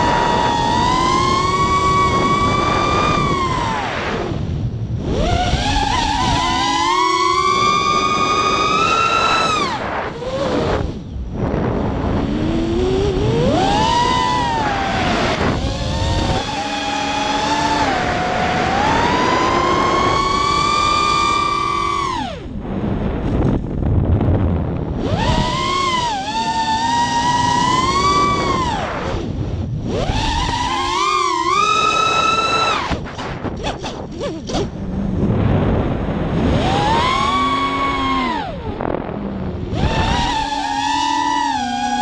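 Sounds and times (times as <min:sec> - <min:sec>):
quadcopter motors whining: 0:00.0 - 0:22.6, 0:24.8 - 0:35.3, 0:36.2 - 0:42.0.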